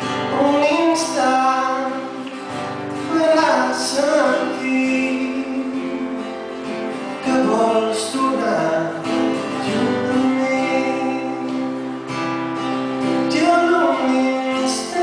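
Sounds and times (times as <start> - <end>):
man singing: 0.0 - 12.1, 13.0 - 15.0
acoustic guitar: 0.0 - 15.0.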